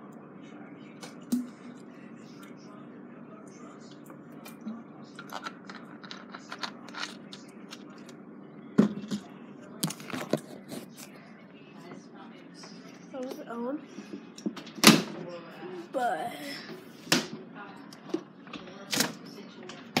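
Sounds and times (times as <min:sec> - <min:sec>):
steady low hum: 0:00.0 - 0:18.6.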